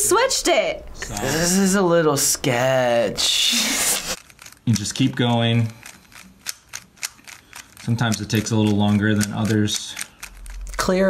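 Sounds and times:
plastic puzzle cube clicking: 0:04.2 - 0:11.0.

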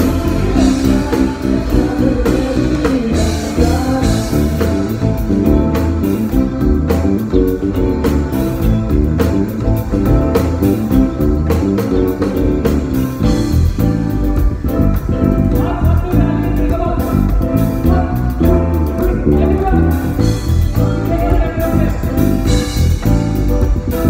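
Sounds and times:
electric bass line: 0:00.0 - 0:24.0
live band playing: 0:00.0 - 0:24.0.

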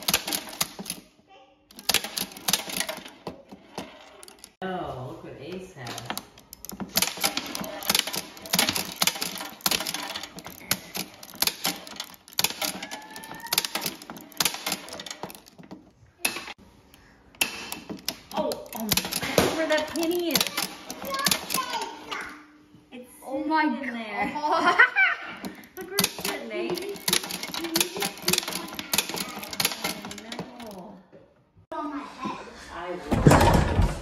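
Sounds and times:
arcade gun game clicking: 0:01.7 - 0:04.6, 0:05.8 - 0:15.7, 0:17.4 - 0:22.0, 0:25.4 - 0:30.8
child crying out: 0:12.8 - 0:13.9.

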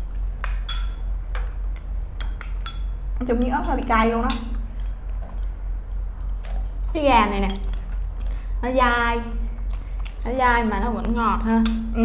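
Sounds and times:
steady low hum: 0:00.0 - 0:12.0
utensils clinking on ceramic bowls: 0:00.4 - 0:01.1, 0:02.2 - 0:05.5.

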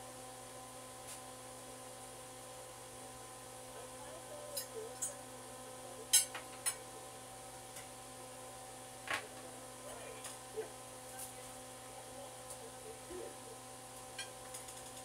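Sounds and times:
electrical hum: 0:00.0 - 0:15.0
faint voices: 0:09.2 - 0:13.7.

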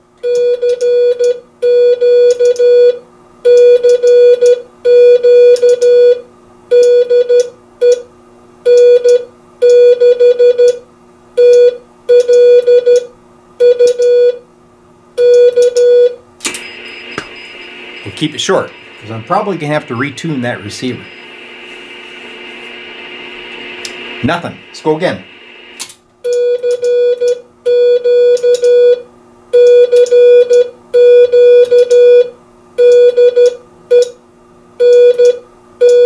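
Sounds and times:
morse code beeps: 0:08.7 - 0:10.8, 0:11.4 - 0:14.4, 0:15.2 - 0:21.6
low steady hum: 0:15.2 - 0:29.0.

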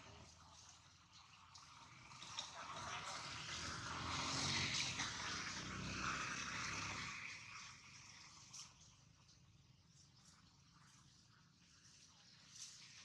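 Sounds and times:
engine passing by: 0:01.4 - 0:09.0.

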